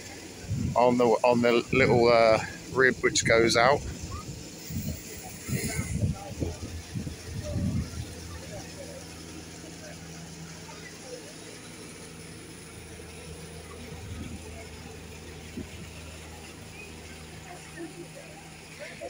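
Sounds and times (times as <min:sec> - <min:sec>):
faint voices: 0:00.0 - 0:19.0
low machinery hum: 0:00.0 - 0:19.0.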